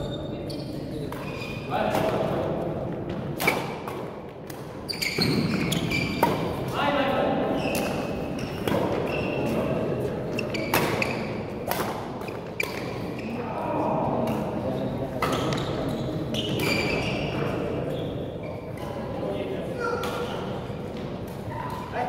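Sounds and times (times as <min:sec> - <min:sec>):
shoe squeaks on wooden floor: 0:00.0 - 0:01.7, 0:04.9 - 0:06.3, 0:07.5 - 0:09.6, 0:10.3 - 0:11.4, 0:15.3 - 0:19.0
racket striking shuttlecock: 0:10.7 - 0:13.1
murmur of voices: 0:13.1 - 0:22.0.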